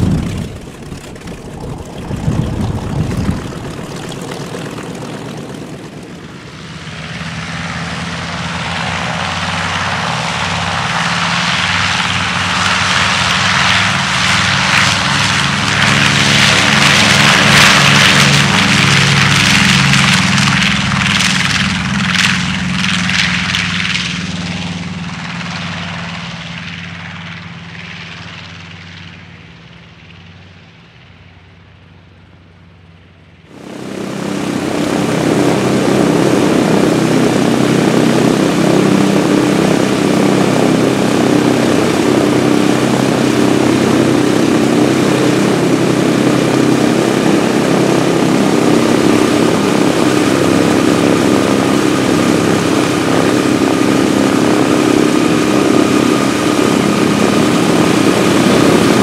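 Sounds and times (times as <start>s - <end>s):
propeller plane taking off: 0.0s - 59.0s.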